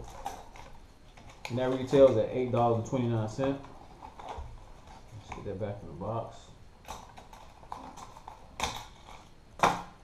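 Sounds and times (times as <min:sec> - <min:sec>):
plastic and cardboard rustling: 0:00.0 - 0:05.6, 0:06.8 - 0:09.9.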